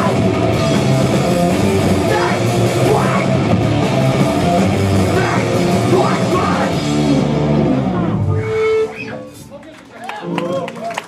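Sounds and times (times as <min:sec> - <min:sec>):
live rock band playing: 0:00.0 - 0:09.6.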